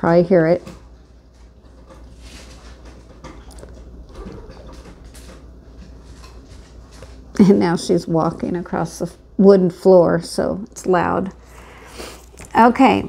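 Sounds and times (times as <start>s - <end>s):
dog walking on wooden floor: 0.4s - 9.1s.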